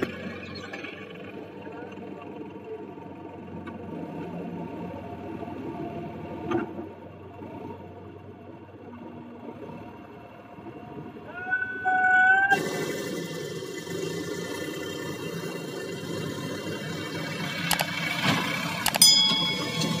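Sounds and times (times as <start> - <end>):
diesel tractor engine running: 0.0 - 11.3, 12.5 - 20.0.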